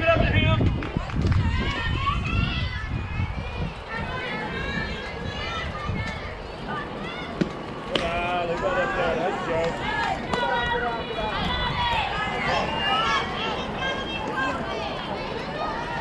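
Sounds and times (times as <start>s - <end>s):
girls cheering and chanting: 0.9s - 7.9s, 8.8s - 16.0s.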